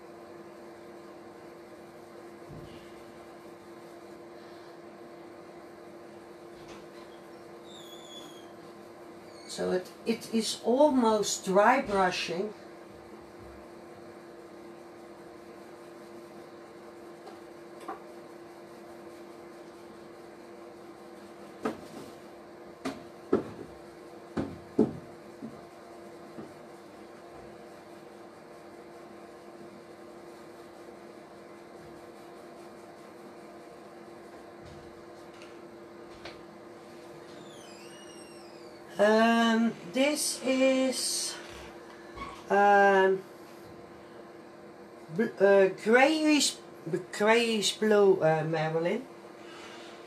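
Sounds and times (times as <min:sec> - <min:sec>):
steady hum: 0:00.0 - 0:50.0.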